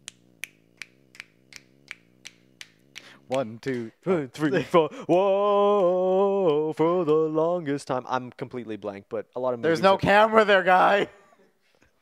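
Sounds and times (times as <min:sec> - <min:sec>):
fingers snapping: 0:00.0 - 0:04.1.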